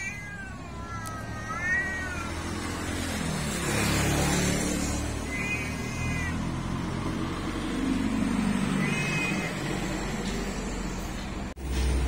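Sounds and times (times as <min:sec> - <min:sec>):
cat meowing: 0:00.0 - 0:07.2, 0:08.6 - 0:10.2.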